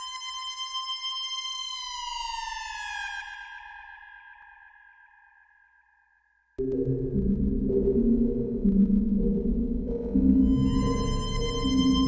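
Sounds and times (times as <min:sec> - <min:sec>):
held high electronic tone: 0:09.2 - 0:12.0.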